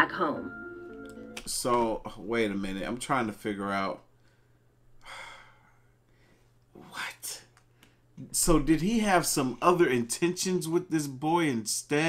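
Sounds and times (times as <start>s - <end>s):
man sighing: 5.0s - 5.9s.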